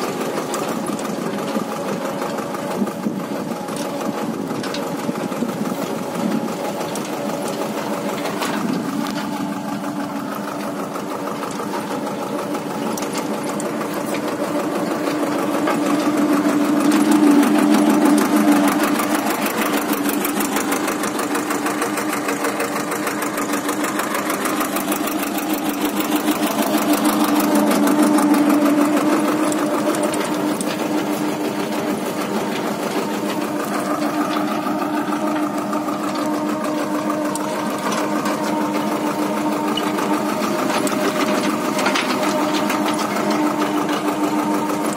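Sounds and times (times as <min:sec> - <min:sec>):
cultivator clatter: 0:00.0 - 0:44.9
tractor diesel engine running: 0:00.0 - 0:44.9.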